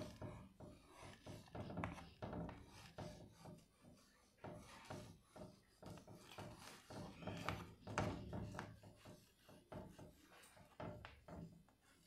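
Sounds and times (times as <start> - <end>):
chalk scratching on chalkboard: 0.0 - 12.0.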